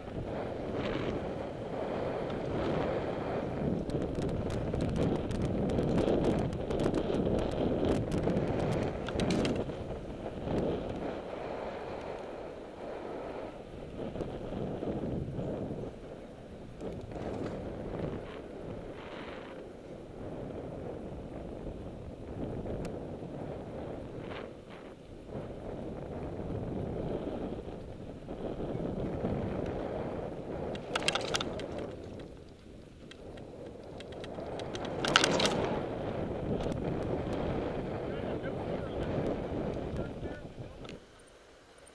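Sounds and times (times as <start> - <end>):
low road rumble: 0.0 - 41.9
wind on microphone: 0.0 - 41.9
clicks and rattles: 9.0 - 9.7, 30.7 - 35.8.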